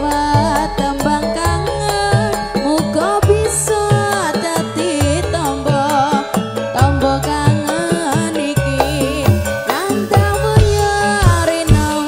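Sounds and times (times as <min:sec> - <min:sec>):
bass: 0:00.0 - 0:12.0
keyboard: 0:00.0 - 0:12.0
woman singing: 0:00.0 - 0:12.0
drum strokes: 0:08.7 - 0:12.0.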